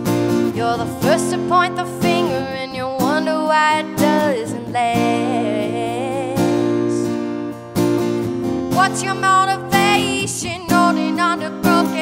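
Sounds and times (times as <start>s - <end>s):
strummed acoustic guitar: 0.0s - 12.0s
woman singing: 0.4s - 7.3s, 8.7s - 12.0s.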